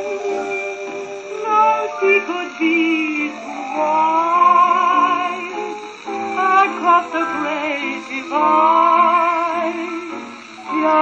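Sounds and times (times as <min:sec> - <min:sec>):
dance band record on gramophone: 0:00.0 - 0:11.0
vocals: 0:00.0 - 0:11.0.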